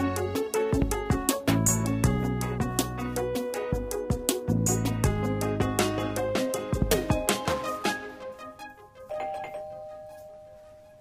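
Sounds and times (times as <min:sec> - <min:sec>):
two-tone doorbell chime: 0:09.1 - 0:11.0.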